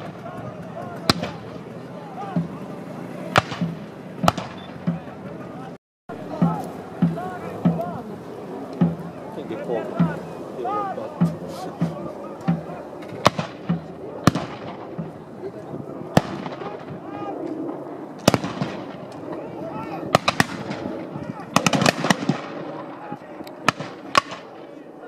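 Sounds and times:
musket shots echoing: 1.0s - 1.6s, 3.3s - 5.2s, 13.2s - 15.1s, 16.1s - 17.0s, 18.2s - 19.1s, 20.1s - 22.9s, 23.6s - 24.6s.

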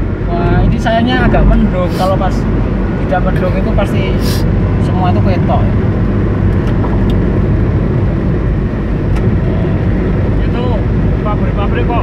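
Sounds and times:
car running: 0.0s - 12.0s
tyres rumbling on concrete road: 0.0s - 12.0s.

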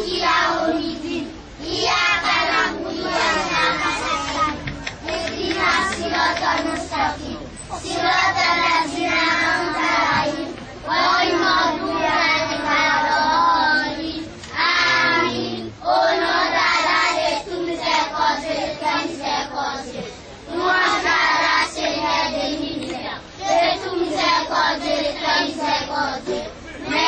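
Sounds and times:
young children singing: 0.0s - 27.0s.

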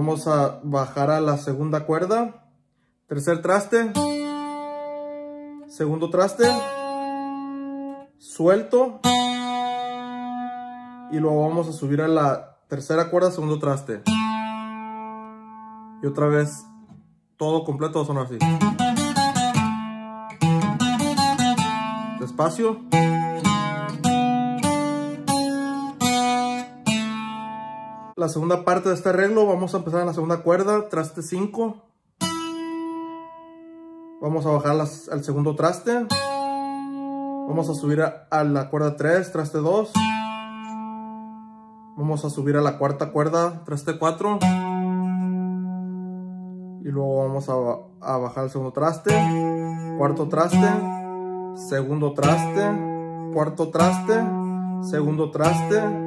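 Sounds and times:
plucked guitar note ringing: 18.4s - 28.1s.

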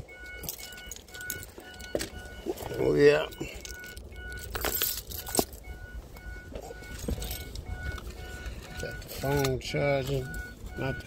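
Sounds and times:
vehicle rolling rumble: 0.0s - 11.0s
vehicle warning chime beeping: 0.0s - 11.0s.

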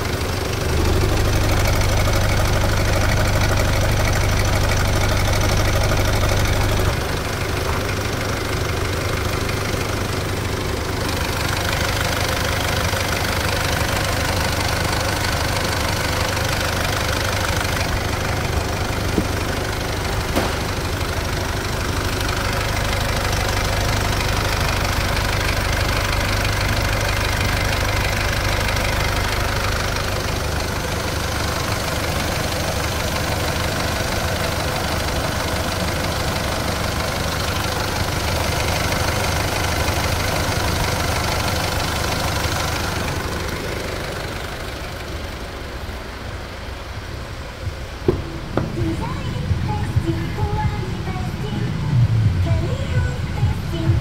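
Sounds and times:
diesel engine idling: 0.0s - 54.0s.

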